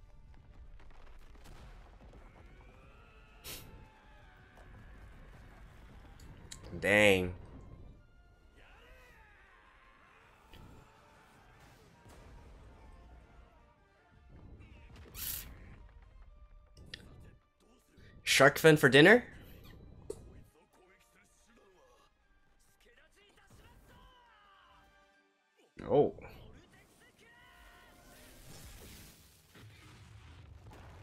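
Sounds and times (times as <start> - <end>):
background music: 3.2 - 28.5.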